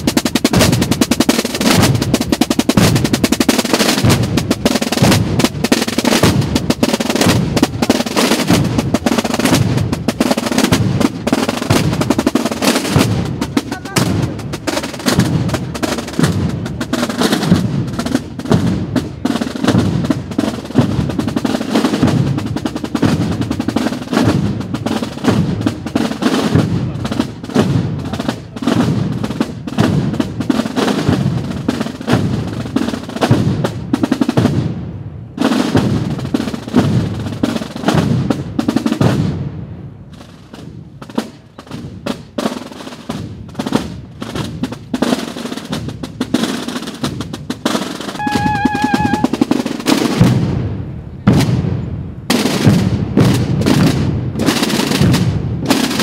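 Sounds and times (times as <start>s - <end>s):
marching snare and bass drums: 0.0s - 56.0s.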